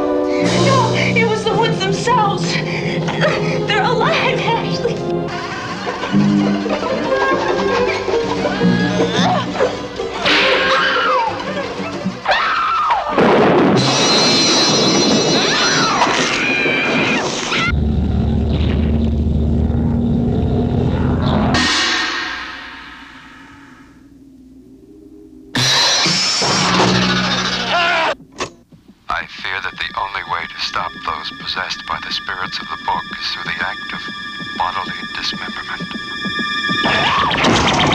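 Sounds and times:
eerie music: 0.0 - 28.2, 29.2 - 37.9
woman screaming: 8.4 - 9.7, 10.3 - 13.2, 27.6 - 28.2
ringing crash: 13.2 - 16.8, 17.8 - 24.1
low rising drone: 17.7 - 27.7.

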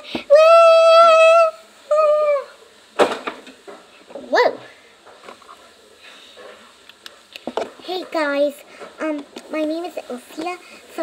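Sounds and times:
child calling woo: 0.2 - 2.6
child saying whoa: 0.3 - 2.6.

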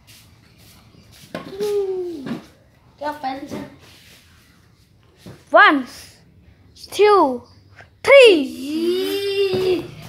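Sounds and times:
child calling out: 8.4 - 10.0.

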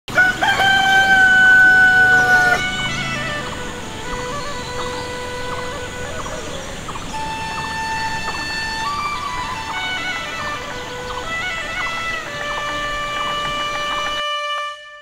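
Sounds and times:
rooster crowing: 0.1 - 3.3
music with long held notes: 0.1 - 15.0.

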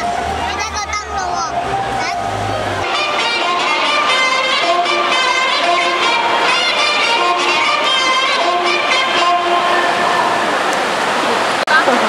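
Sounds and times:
saxophone playing long notes: 0.0 - 10.6
hall noise: 0.0 - 12.0.

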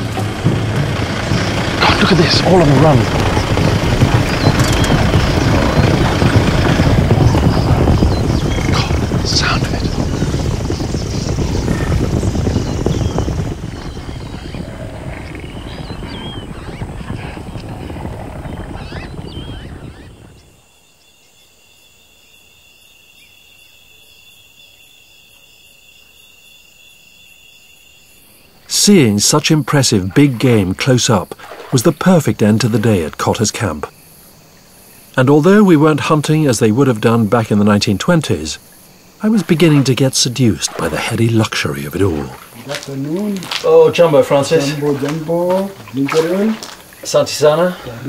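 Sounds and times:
rumble of running hooves: 0.0 - 20.7, 37.9 - 48.0.

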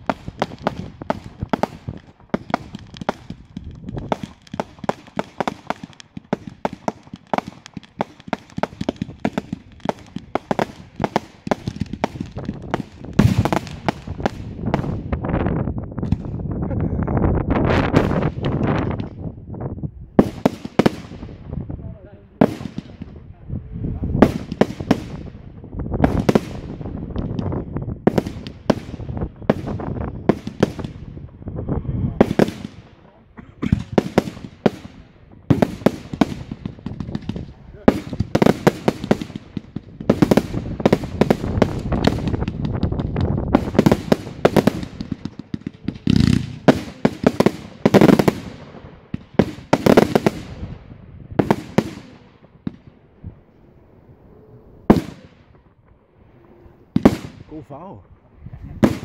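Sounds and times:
fireworks bangs: 0.0 - 19.4, 20.1 - 59.0.

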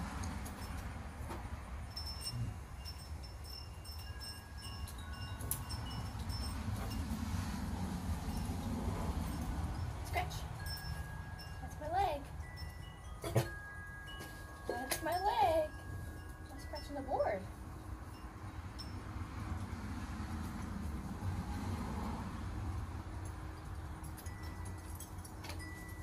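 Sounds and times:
wind chimes ringing: 0.3 - 26.0.

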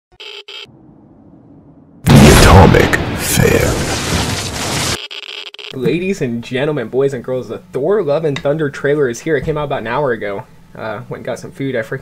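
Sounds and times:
faint low rumble: 0.7 - 3.9.

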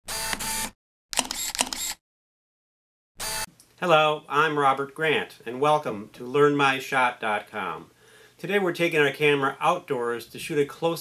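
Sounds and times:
camera shutter clicks: 0.1 - 2.0.

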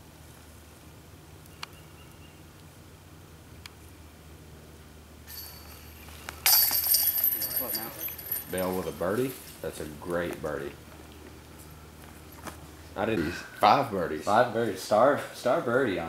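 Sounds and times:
metal chains rattling: 5.3 - 10.1.

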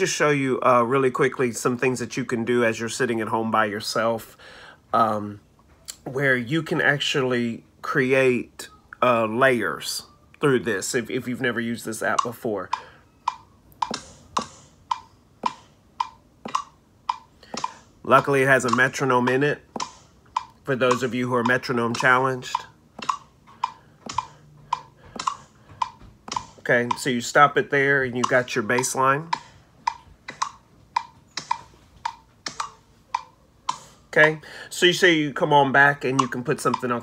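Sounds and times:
metronome ticks: 10.3 - 34.4, 35.2 - 37.0.

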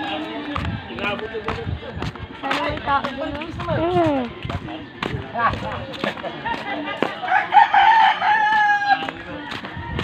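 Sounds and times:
rooster crowing: 7.3 - 9.1.

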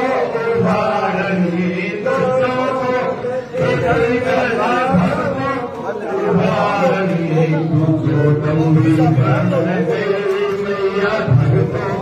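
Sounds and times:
voices chanting in long held tones: 0.0 - 12.0.

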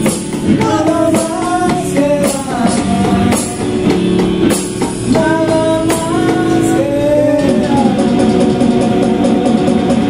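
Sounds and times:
electronic keyboard rock music: 0.0 - 10.0
programmed drum beat: 0.0 - 10.0.

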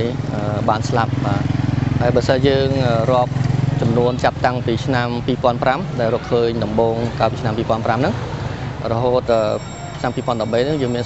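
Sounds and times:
man talking: 0.0 - 8.2, 8.8 - 11.0.

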